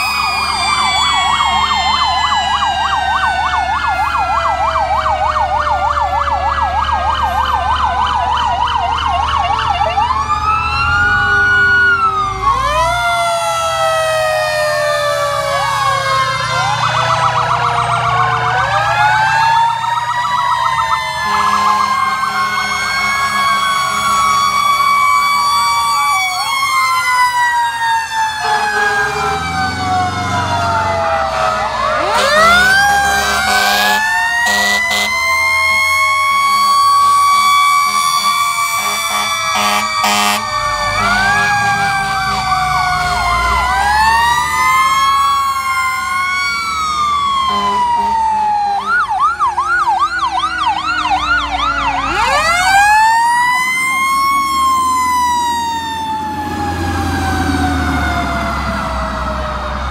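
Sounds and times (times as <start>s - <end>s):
electronic sirens wailing and yelping: 0.0s - 59.9s
truck engines: 0.0s - 59.9s
air horn blasts: 21.2s - 24.7s, 28.4s - 29.4s, 31.2s - 35.2s, 35.8s - 42.6s, 47.4s - 48.3s.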